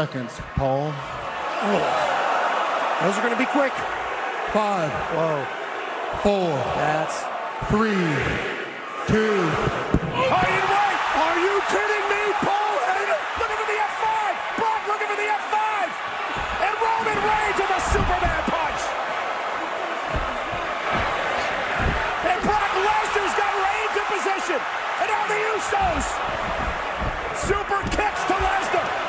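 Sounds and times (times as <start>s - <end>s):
arena crowd cheering and yelling: 0.0s - 29.0s
bodies thudding on ring canvas: 16.1s - 19.0s, 20.0s - 24.1s, 25.6s - 29.0s.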